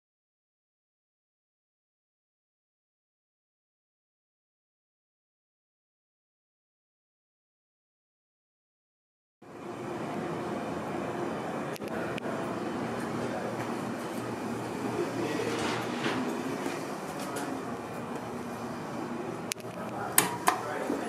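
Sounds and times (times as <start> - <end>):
steady mechanical hum: 9.4 - 21.0.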